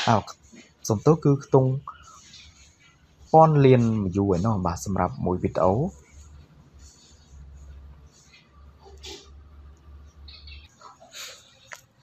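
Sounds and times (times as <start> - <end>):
narrator speaking: 0.0 - 2.5, 3.2 - 6.2.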